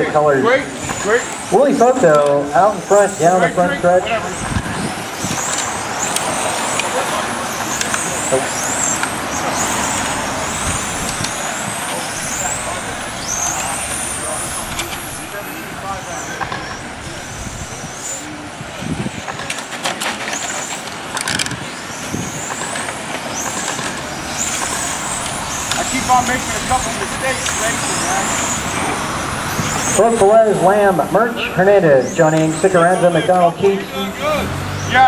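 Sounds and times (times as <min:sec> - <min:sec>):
steady background noise: 0:00.0 - 0:35.0
high-pitched electric motor whines: 0:00.8 - 0:18.4, 0:20.4 - 0:35.0.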